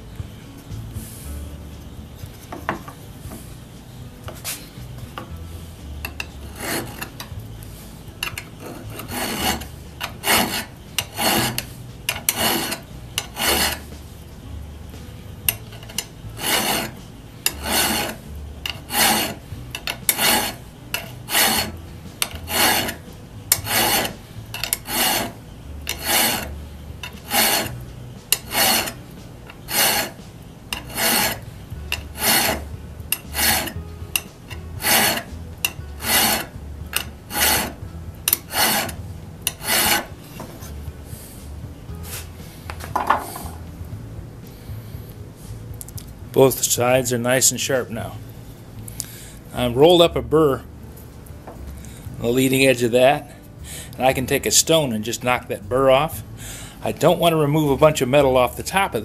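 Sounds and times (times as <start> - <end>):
file rasping on steel: 6.0 - 7.3, 8.2 - 14.0, 15.5 - 40.8.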